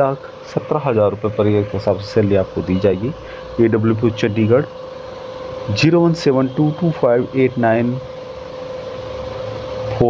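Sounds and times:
faint constant tone: 0.0s - 9.3s
background hum and hiss: 0.0s - 10.0s.

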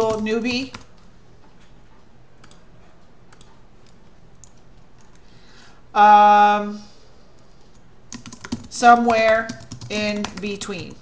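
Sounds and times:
computer mouse and keyboard clicks: 0.0s - 5.3s, 7.4s - 11.0s.

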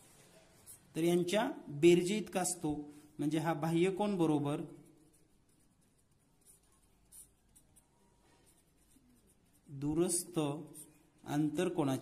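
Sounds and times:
man talking: 0.9s - 4.8s, 9.7s - 12.0s
ballpoint pen scratching on paper: 4.2s - 11.8s.

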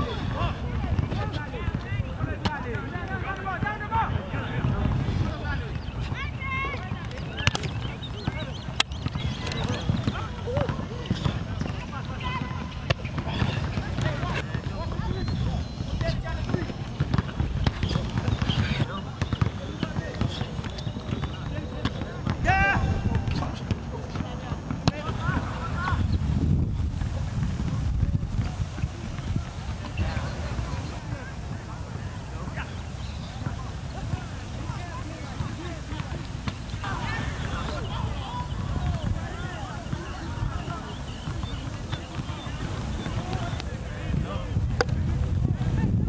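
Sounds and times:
faint distant voices: 0.0s - 46.0s
people talking in background: 0.0s - 46.0s
wind buffeting microphone: 3.9s - 11.5s, 25.0s - 46.0s.

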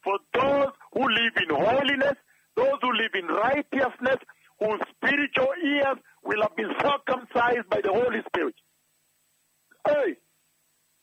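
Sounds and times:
man talking: 0.0s - 8.6s, 9.8s - 10.2s.

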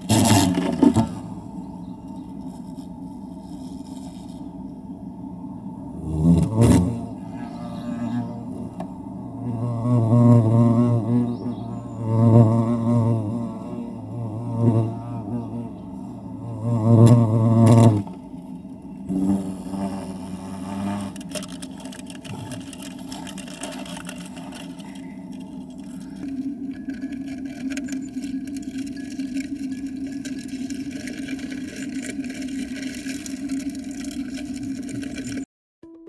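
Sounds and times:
wasp wings buzzing: 5.9s - 34.5s.

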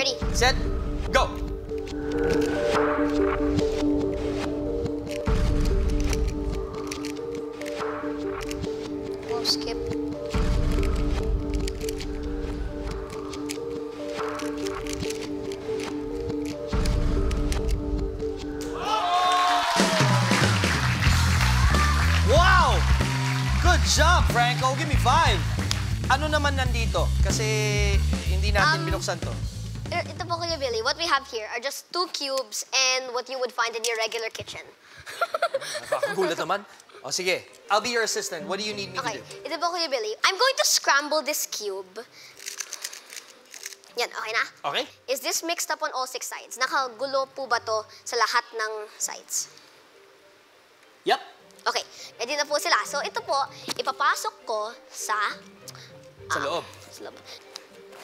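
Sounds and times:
background music with beat: 0.0s - 30.4s
puzzle cube plastic clicks: 5.0s - 12.2s, 13.1s - 17.8s, 42.4s - 43.9s.

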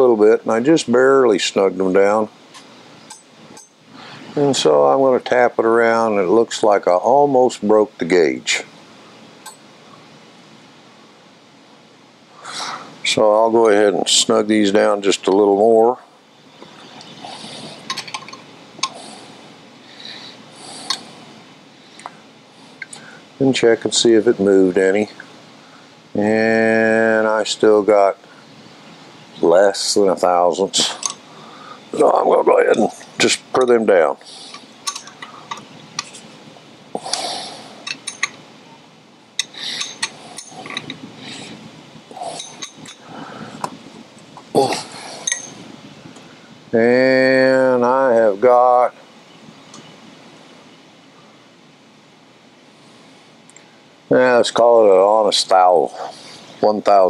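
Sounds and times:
wrench scraping metal: 34.4s - 36.3s, 37.8s - 38.4s, 39.4s - 41.6s, 42.3s - 43.0s, 45.2s - 45.6s
wrench clinking on metal: 37.8s - 38.4s, 39.4s - 41.0s, 42.3s - 43.0s, 45.2s - 45.6s
metal scraping rasps: 39.4s - 41.6s.

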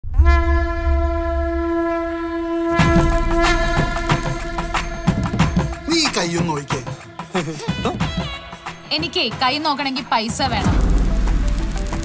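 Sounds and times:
long horn-like note: 0.0s - 5.8s
deep low rumble: 10.6s - 12.0s.

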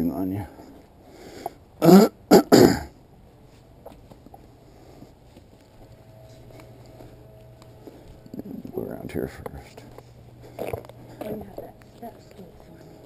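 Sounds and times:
faint background noise: 0.0s - 13.0s
person clearing throat: 1.8s - 3.0s.

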